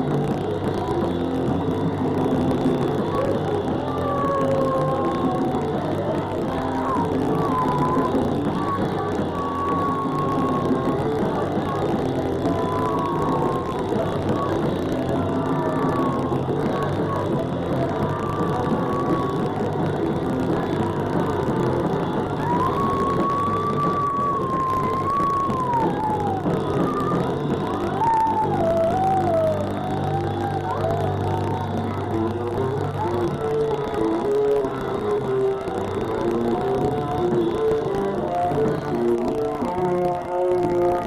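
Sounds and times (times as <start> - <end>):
punk rock band playing live: 0.0 - 41.0.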